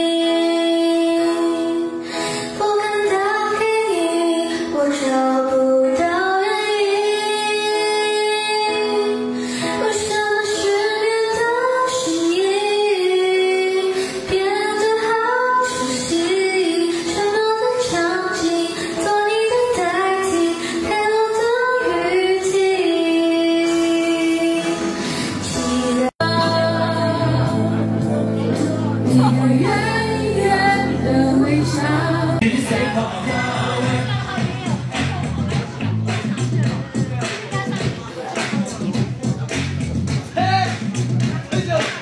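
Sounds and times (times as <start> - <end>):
woman singing slow melody: 0.0 - 32.4.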